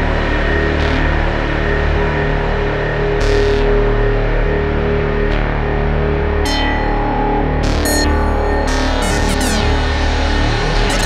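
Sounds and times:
ambient synthesizer music: 5.3 - 11.0.

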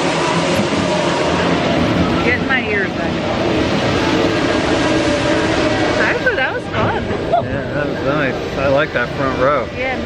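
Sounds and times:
roller coaster rumbling on track: 0.0 - 10.0.

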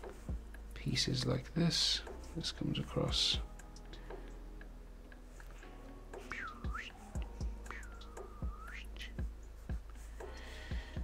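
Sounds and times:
soft low thuds: 0.0 - 0.6, 8.4 - 11.0.

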